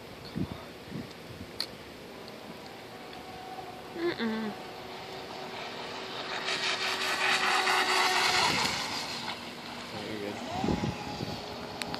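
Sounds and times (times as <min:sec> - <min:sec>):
model boat motor whine: 0:02.7 - 0:11.9
hiss of water spray: 0:05.4 - 0:10.8.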